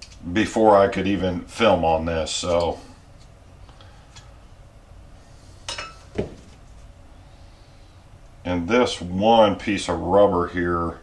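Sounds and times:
dull knock of part set down: 6.1 - 6.6.

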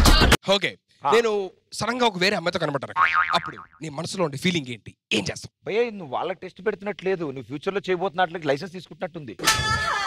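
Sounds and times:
twanging boing sound effect: 3.0 - 3.8.

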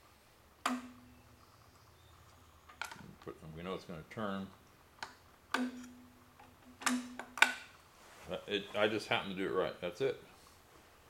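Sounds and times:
low steady tone: 0.6 - 3.2, 5.5 - 7.4.

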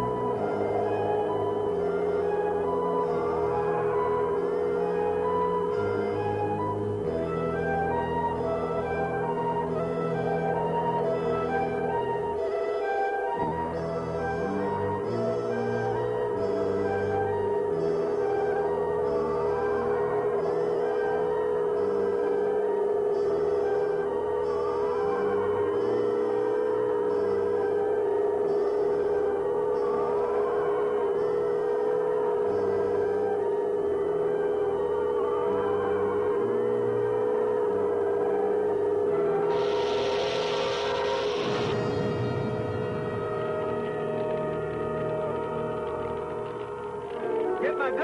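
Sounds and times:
electronic drone with warbling tones: 0.0 - 48.0
pulsing beeps: 13.6 - 48.0
rushing hiss: 39.5 - 42.7.

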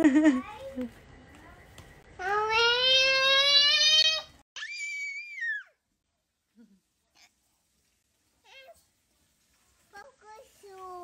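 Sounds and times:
high-pitched meow-like cry: 2.7 - 5.8.

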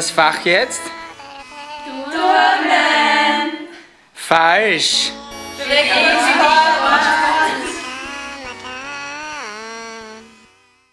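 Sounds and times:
descending buzzy wrong-answer tone: 5.1 - 10.9.

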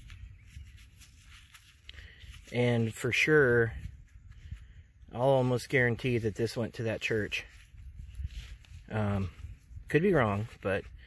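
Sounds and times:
gloved hand scuffing soil: 0.0 - 11.0.

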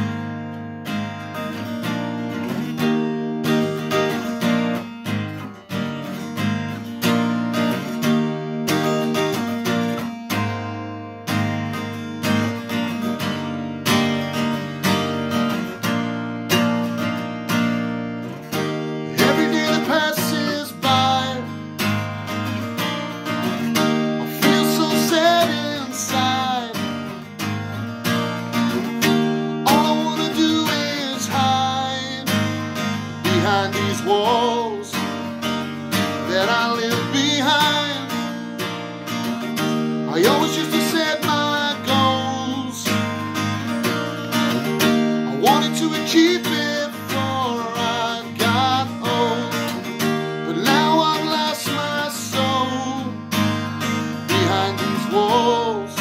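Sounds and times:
acoustic guitar strumming: 0.0 - 56.0
person singing: 19.1 - 21.6, 24.2 - 27.3, 29.6 - 35.4, 36.0 - 38.4, 40.0 - 43.1, 44.6 - 56.0.

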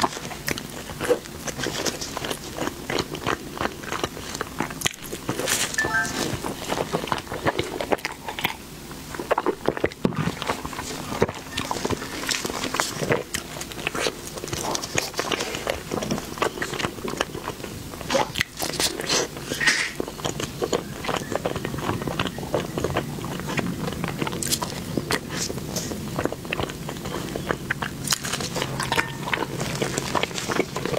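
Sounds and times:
mouth chewing soft bun: 0.0 - 30.9.

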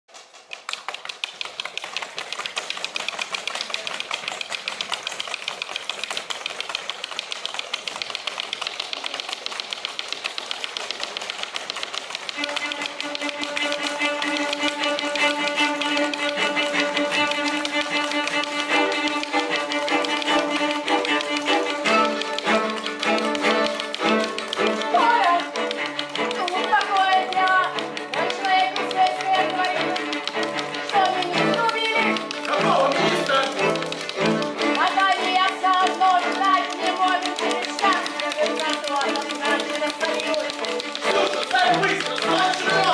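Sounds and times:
rapid dry clicks: 0.1 - 42.9
string ensemble playing: 1.6 - 42.9.

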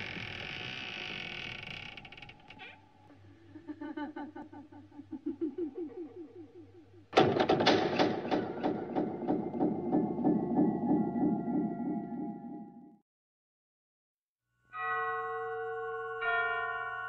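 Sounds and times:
person laughing: 3.3 - 7.2.

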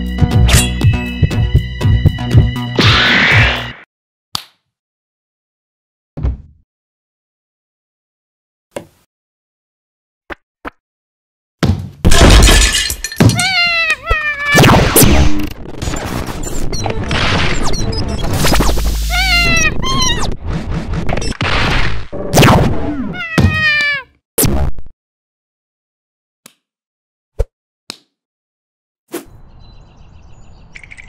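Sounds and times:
table crashing and breaking: 12.1 - 13.6
cartoon sound effect: 13.3 - 15.4, 18.3 - 20.3, 22.5 - 24.0
cat-like meow: 13.4 - 15.0, 19.1 - 20.3, 23.0 - 24.1.

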